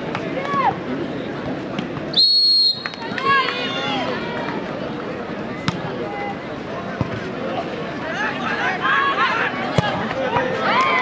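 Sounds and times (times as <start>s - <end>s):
crowd chatter and shouts: 0.0s - 11.0s
referee's whistle blast: 2.1s - 3.2s.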